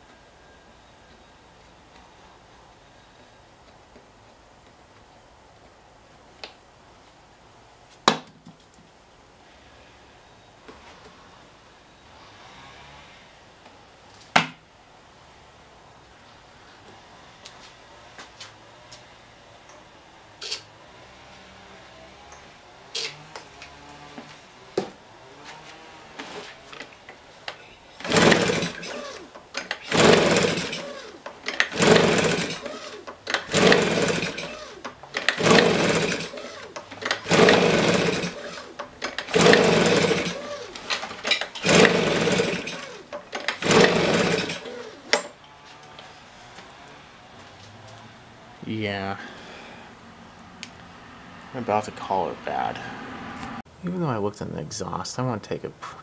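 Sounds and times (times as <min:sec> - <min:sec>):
leaf blower engine cranking: 0:26.2 - 0:46.0.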